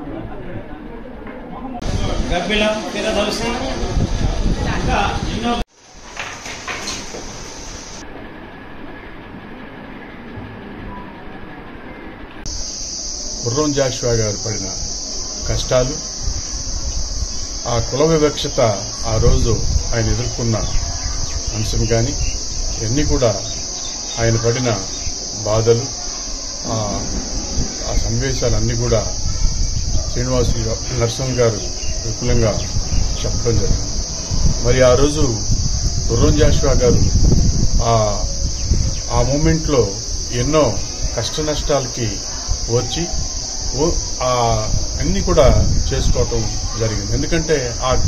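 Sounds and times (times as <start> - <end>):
crickets chirping: 1.8 - 48.0
man speaking: 13.4 - 14.8, 15.4 - 16.1, 17.6 - 20.8, 21.5 - 23.6, 24.2 - 26.0, 26.6 - 29.2, 30.2 - 33.9, 34.6 - 37.2, 37.8 - 38.4, 39.1 - 48.0
man talking: 13.4 - 14.8, 15.4 - 16.1, 17.7 - 20.8, 21.5 - 23.6, 24.2 - 26.0, 26.6 - 27.2, 27.8 - 29.2, 30.2 - 33.9, 34.6 - 37.2, 37.8 - 38.4, 39.1 - 43.2, 43.8 - 48.0.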